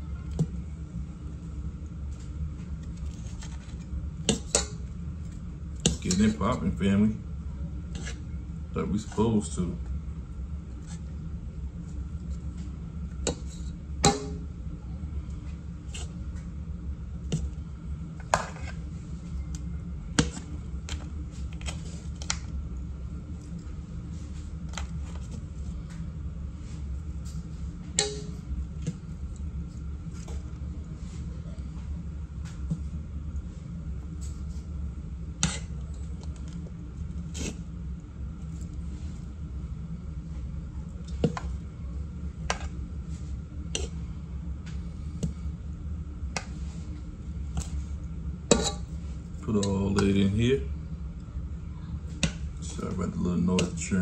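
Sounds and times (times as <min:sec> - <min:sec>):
low hum: 0:00.0 - 0:54.0.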